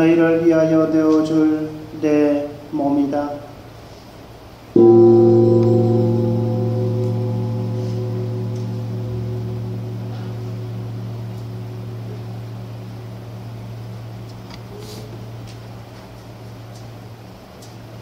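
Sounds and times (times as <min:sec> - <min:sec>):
gong ringing: 0:04.7 - 0:17.5.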